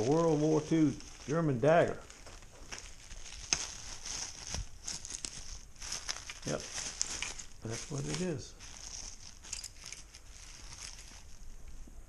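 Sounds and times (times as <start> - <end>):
bubble wrap crinkling: 0.0 - 12.0.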